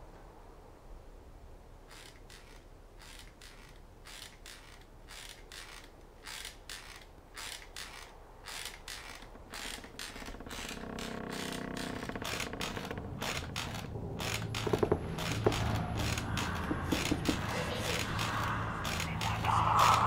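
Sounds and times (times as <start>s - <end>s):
drawn-out pitched creak: 1.9s - 20.0s
mechanical clicking and creaking: 1.9s - 20.0s.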